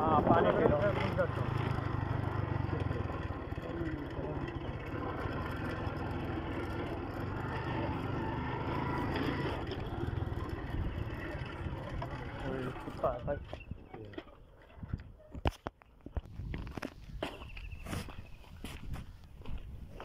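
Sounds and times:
motorcycle engine running: 0.0s - 14.2s.

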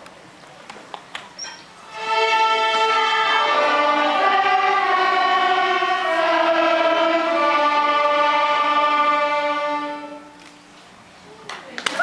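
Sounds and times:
high squeak: 1.4s - 1.8s.

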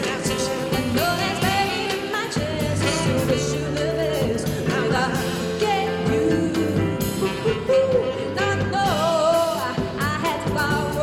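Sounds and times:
bass notes: 0.0s - 11.0s
drum and cymbal hits: 0.0s - 11.0s
woman singing into microphone: 0.0s - 11.0s.

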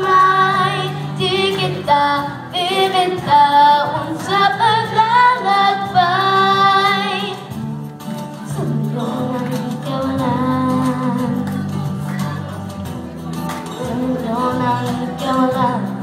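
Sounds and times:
woman singing pop ballad: 0.0s - 7.6s, 8.5s - 11.9s, 13.8s - 16.0s
instrumental accompaniment: 0.0s - 16.0s.

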